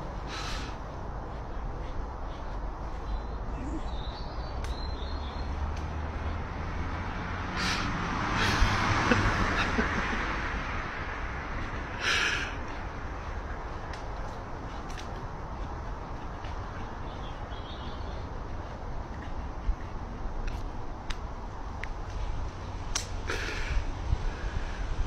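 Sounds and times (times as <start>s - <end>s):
sharp clicks: 22.9s - 23.2s
wind on microphone: 23.6s - 25.0s.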